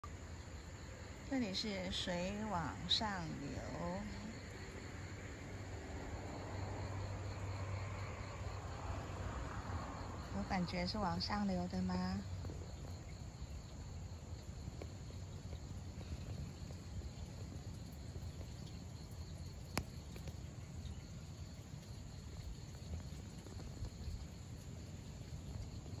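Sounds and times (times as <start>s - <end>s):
insects trilling: 0.0s - 26.0s.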